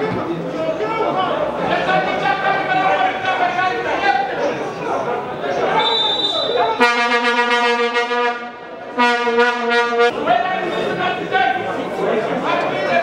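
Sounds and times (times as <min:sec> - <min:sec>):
crowd voices: 0:00.0 - 0:13.0
horn blowing long notes: 0:06.8 - 0:10.1.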